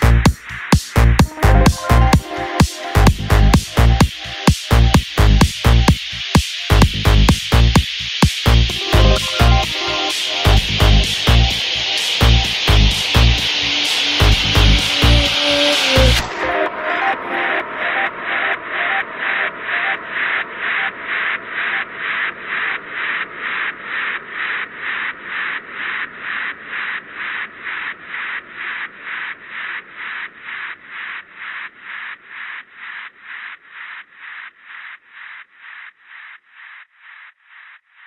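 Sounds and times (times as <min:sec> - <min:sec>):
pulsing electronic hiss: 0:00.0 - 0:17.6.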